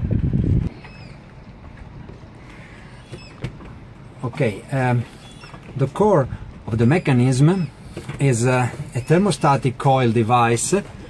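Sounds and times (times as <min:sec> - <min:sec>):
low rumble on microphone: 0:00.0 - 0:09.2.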